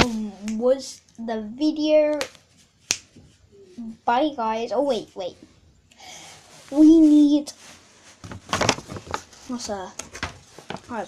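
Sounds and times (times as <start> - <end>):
boy speaking: 0.0 - 2.3, 3.7 - 5.4, 6.7 - 7.6, 9.5 - 10.0.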